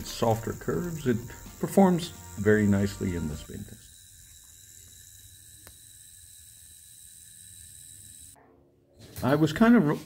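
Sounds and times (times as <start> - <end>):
spinning yo-yo hiss and whine: 0.0 - 8.4.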